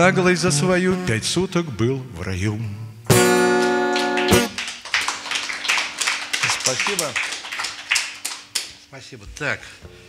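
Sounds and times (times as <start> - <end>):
audience applauding: 3.4 - 8.8.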